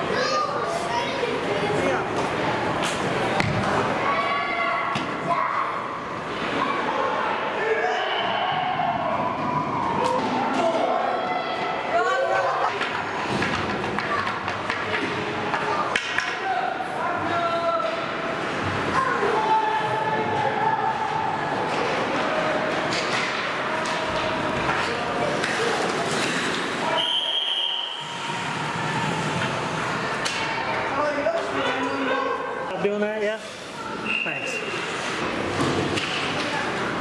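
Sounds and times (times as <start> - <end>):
pucks and players hitting boards: 2.1 - 4.0, 12.7 - 19.4, 20.0 - 27.0, 28.8 - 32.0, 35.2 - 37.0.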